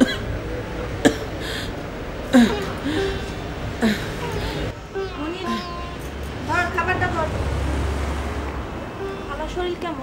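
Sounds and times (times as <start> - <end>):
motor vehicle rumble: 0.0 - 10.0.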